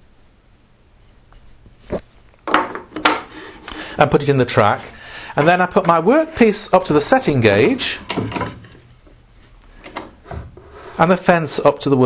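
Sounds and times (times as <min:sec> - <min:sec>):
wooden jig knocks and clicks: 0:02.4 - 0:03.3
wood rubbing scrape: 0:04.4 - 0:11.1.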